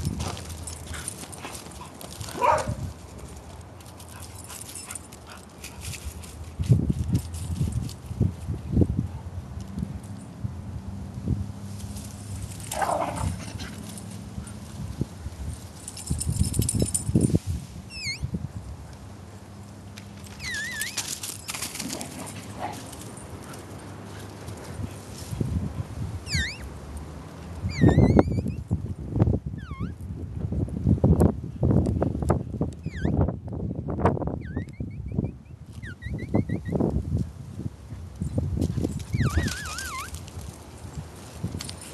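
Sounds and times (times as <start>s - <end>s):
footsteps on dry leaves: 0.0s - 4.3s
person squeaking to call dogs: 17.9s - 18.3s, 20.4s - 21.2s, 26.2s - 26.7s, 27.6s - 28.6s, 29.6s - 30.0s, 32.8s - 33.2s, 34.4s - 36.8s, 39.0s - 40.2s.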